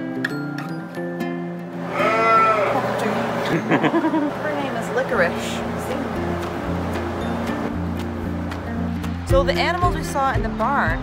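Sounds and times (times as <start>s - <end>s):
acoustic guitar music: 0.0s - 11.0s
sheep bleating: 1.8s - 3.0s.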